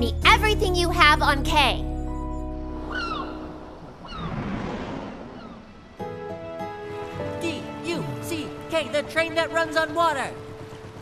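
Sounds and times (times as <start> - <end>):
music: 0.0 - 3.6, 6.0 - 11.0.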